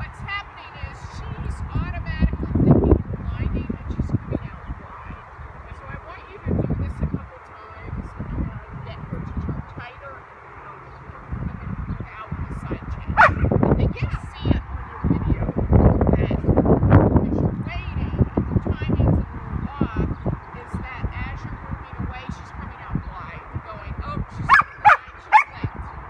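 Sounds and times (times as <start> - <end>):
dog barking: 13.2 - 13.4, 24.5 - 25.6.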